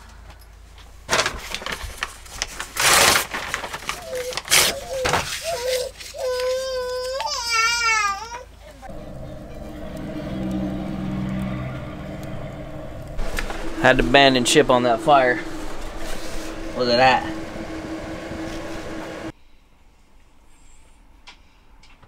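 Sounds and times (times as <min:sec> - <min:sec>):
baby crying: 0:04.0 - 0:08.5
low hum: 0:08.9 - 0:19.3.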